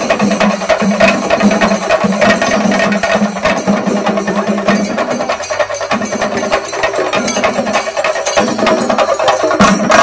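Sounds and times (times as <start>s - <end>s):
drums played with sticks: 0.0s - 10.0s.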